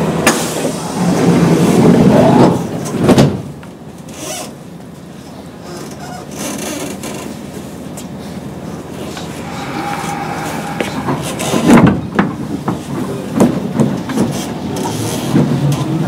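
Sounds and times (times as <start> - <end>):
train cabin noise: 0.0 - 16.0.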